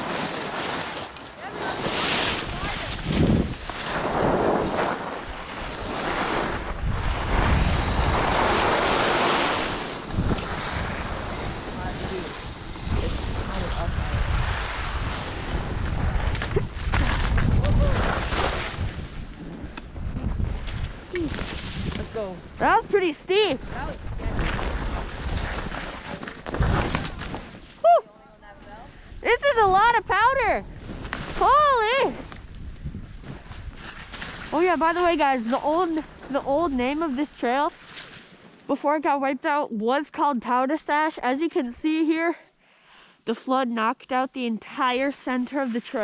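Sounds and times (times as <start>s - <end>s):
skis sliding over snow: 0.0s - 27.7s, 28.6s - 38.5s, 44.8s - 46.0s
wind buffeting microphone: 1.7s - 27.6s, 28.4s - 37.7s
person exclaiming: 17.6s - 18.0s.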